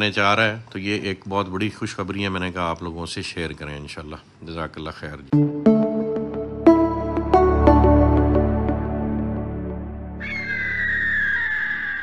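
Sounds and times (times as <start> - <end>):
ambient music drone: 5.4 - 11.0
bird of prey screech: 10.2 - 12.0.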